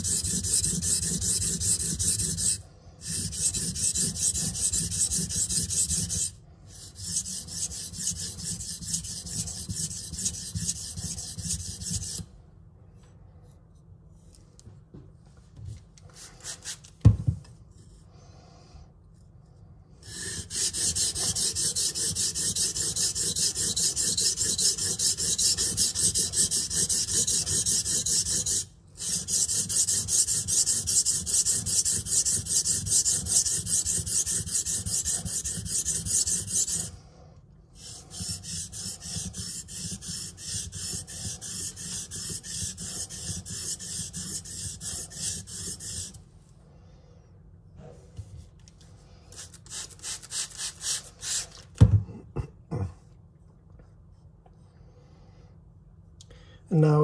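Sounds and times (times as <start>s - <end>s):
knife scraping on whetstone: 0.0s - 12.3s, 20.0s - 37.0s, 37.8s - 46.2s.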